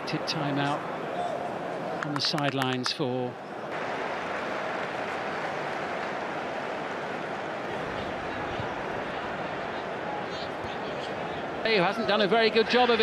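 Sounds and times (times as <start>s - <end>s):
stadium crowd hum: 0.0s - 13.0s.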